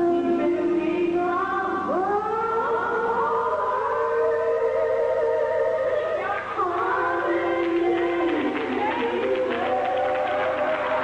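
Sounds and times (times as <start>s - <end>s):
gospel music with sliding chord: 0.0s - 11.0s.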